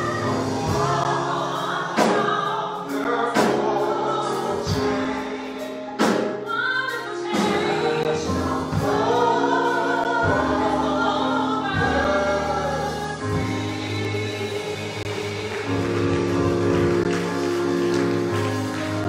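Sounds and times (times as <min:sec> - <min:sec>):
gospel choir singing: 0:00.0 - 0:19.0
keyboard chords: 0:00.0 - 0:19.0.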